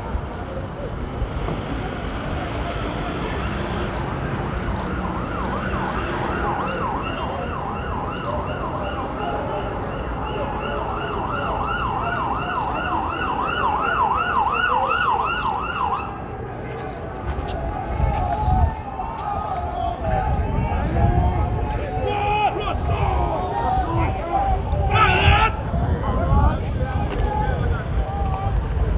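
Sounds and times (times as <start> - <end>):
vehicle siren in fast yelp: 4.8 - 16.2, 21.8 - 25.7.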